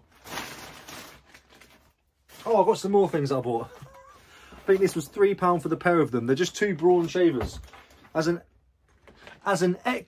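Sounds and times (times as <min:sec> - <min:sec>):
plastic bag rustling: 0:00.0 - 0:05.4.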